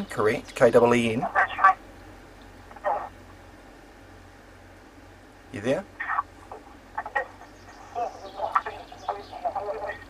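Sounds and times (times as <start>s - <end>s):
muffled woman's voice over phone: 1.2s - 1.8s, 2.8s - 3.1s, 6.0s - 10.0s.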